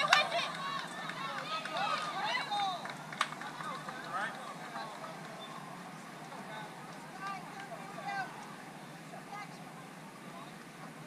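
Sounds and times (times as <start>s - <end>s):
distant voices shouting: 0.0s - 11.0s
outdoor background noise: 0.0s - 11.0s.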